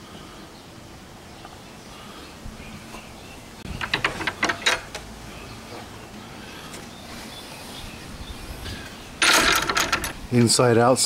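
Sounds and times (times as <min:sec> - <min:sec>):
metal gate latch rattling: 0:03.8 - 0:05.0, 0:09.2 - 0:10.2.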